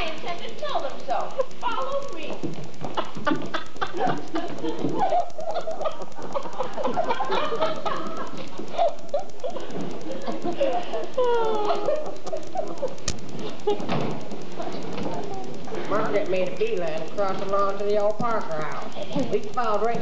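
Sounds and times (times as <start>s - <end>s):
overlapping voices: 0.0s - 20.0s.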